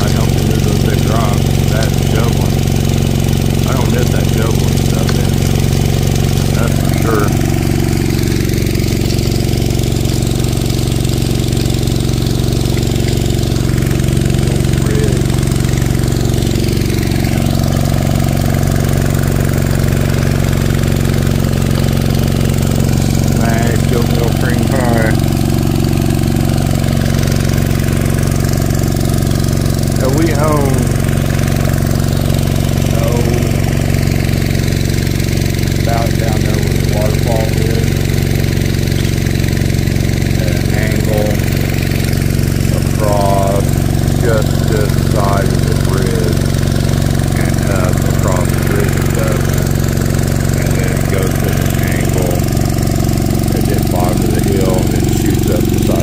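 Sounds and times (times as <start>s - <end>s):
small engine running steadily: 0.0s - 56.0s
high-pitched warbling: 32.9s - 33.6s, 47.4s - 49.6s.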